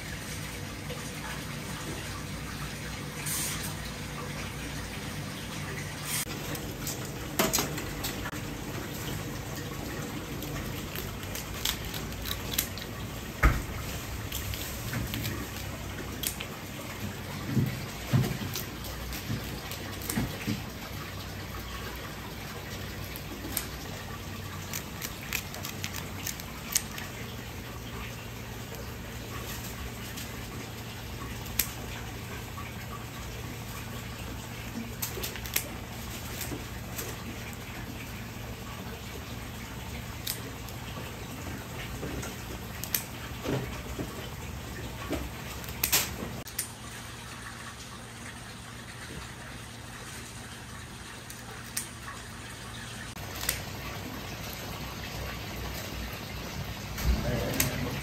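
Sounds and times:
crab sizzling on a grill: 0:06.1 - 0:32.5.

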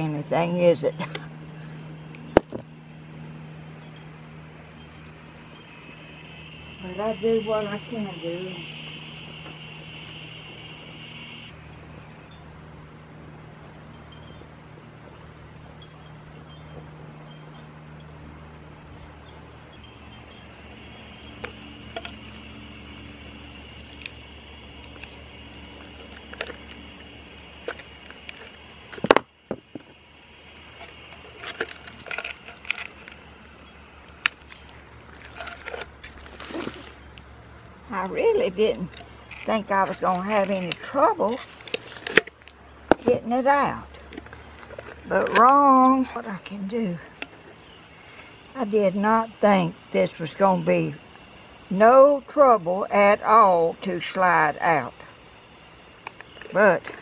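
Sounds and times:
faint outdoor hum: 0:00.0 - 0:57.0.

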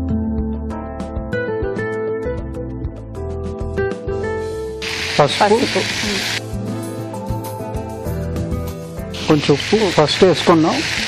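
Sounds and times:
chicken sizzling in a pan: 0:04.8 - 0:06.4, 0:09.2 - 0:11.0.

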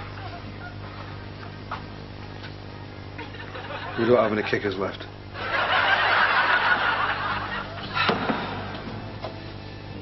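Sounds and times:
audience laughing: 0:03.2 - 0:08.8.

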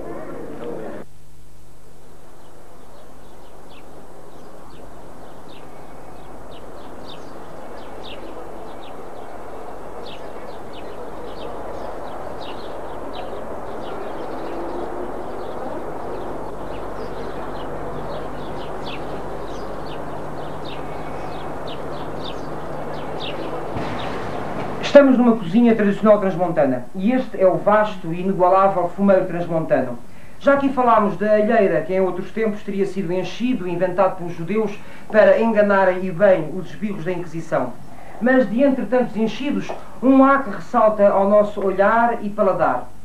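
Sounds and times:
steady hiss: 0:00.0 - 0:42.2
small birds chirping: 0:02.4 - 0:28.8.

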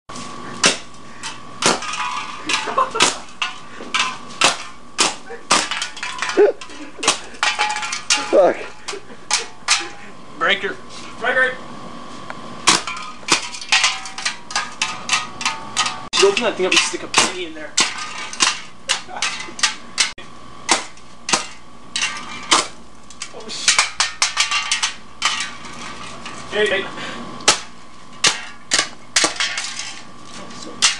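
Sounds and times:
electrical arcing cracks: 0:01.6 - 0:08.6.

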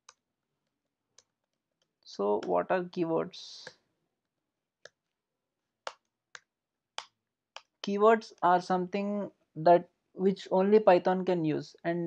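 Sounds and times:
man talking: 0:07.8 - 0:12.0.

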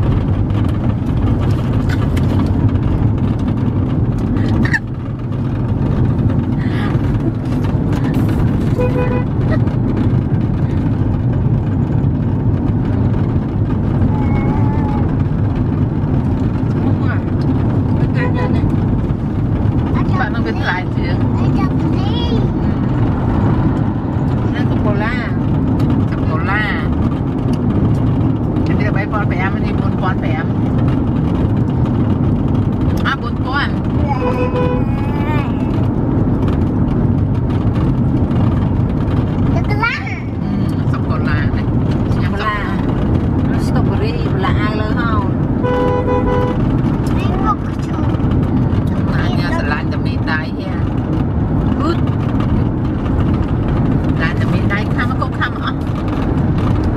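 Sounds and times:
car road and engine rumble: 0:00.0 - 0:56.9
voices: 0:33.0 - 0:35.8.

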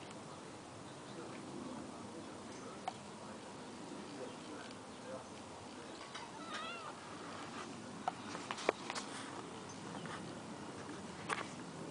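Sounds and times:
cat meowing: 0:06.2 - 0:07.0.

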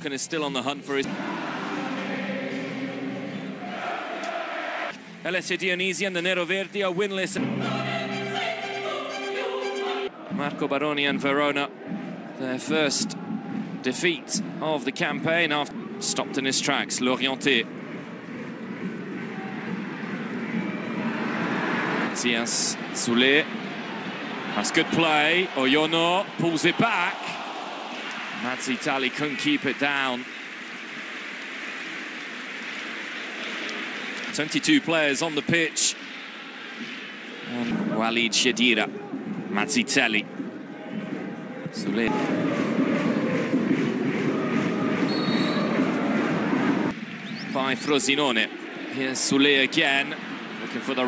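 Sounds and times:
stadium crowd noise: 0:00.0 - 0:51.0.

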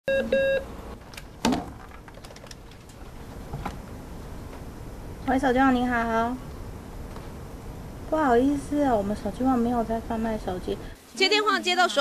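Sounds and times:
short beeps: 0:00.1 - 0:00.6
telephone ringing: 0:00.1 - 0:00.6.

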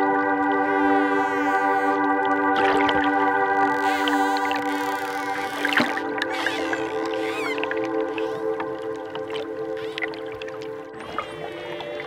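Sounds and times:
slow ambient music: 0:00.0 - 0:12.0
dolphin clicks: 0:02.9 - 0:12.0
dolphin whistles: 0:06.3 - 0:08.5.

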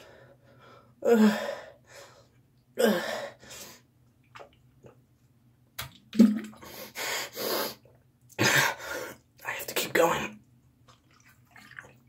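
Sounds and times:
person gasping and breathing hard: 0:00.0 - 0:02.2, 0:02.8 - 0:03.7.

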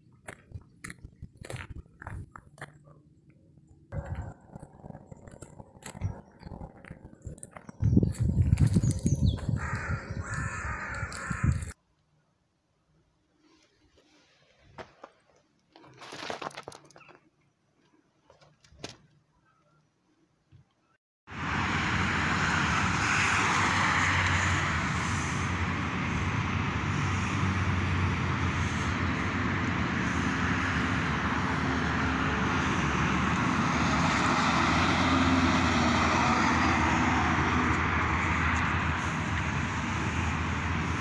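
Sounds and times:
low rumble: 0:03.9 - 0:11.8.

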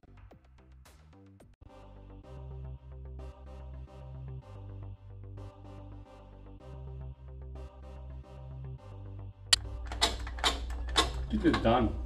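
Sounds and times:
low hum: 0:02.3 - 0:12.0.

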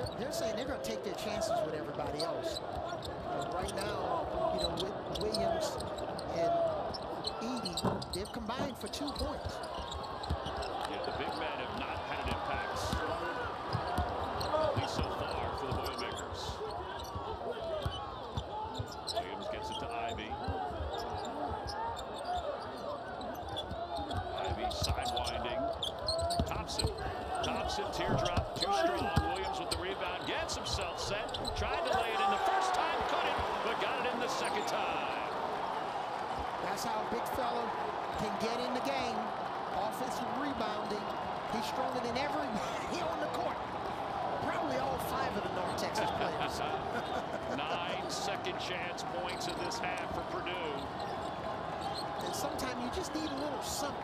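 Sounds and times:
players calling out: 0:01.4 - 0:54.0.

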